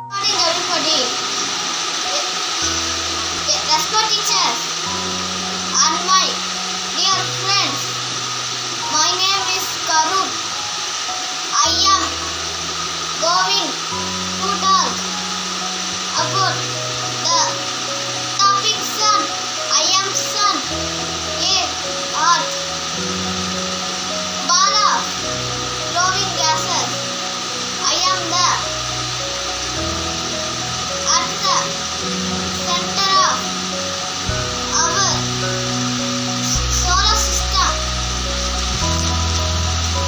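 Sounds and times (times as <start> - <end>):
child speaking: 0.0 - 1.2, 2.1 - 2.4, 3.4 - 4.7, 5.7 - 8.0, 8.8 - 10.4, 11.5 - 12.2, 13.2 - 13.8, 14.4 - 15.2, 16.1 - 17.7, 18.4 - 22.6, 24.3 - 25.2, 25.8 - 27.0, 27.8 - 28.8, 31.0 - 31.8, 32.5 - 33.6, 34.7 - 35.3, 36.4 - 38.0, 38.9 - 39.4
steady hiss: 0.0 - 40.0
background music with bass line: 33.4 - 40.0.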